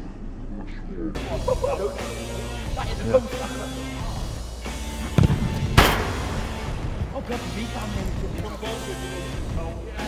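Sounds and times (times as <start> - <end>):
background music: 0.0 - 10.0
football kicked: 5.0 - 7.4
loud smack echoing in hall: 5.1 - 7.8.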